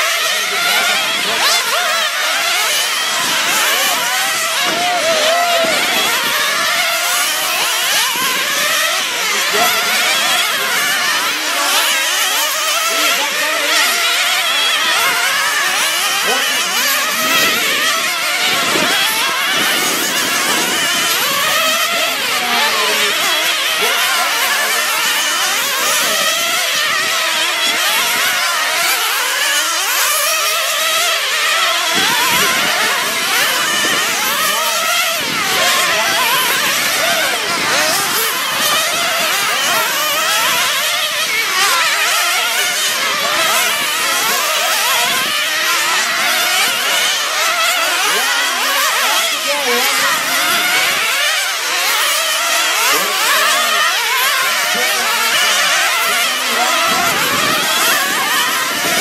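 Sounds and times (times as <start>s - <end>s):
model car engines whining: 0.0s - 59.0s.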